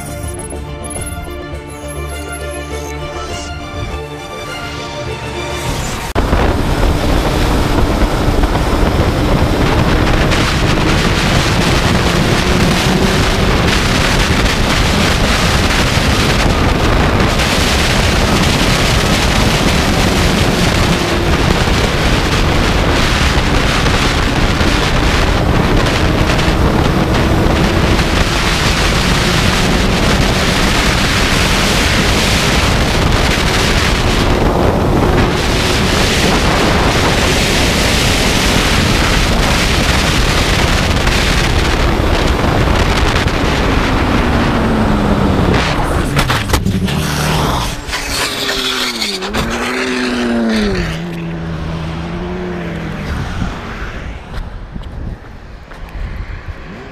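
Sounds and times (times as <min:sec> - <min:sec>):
motorcycle engine drone: 0:00.0 - 0:56.9
wind buffeting microphone: 0:05.7 - 0:56.9.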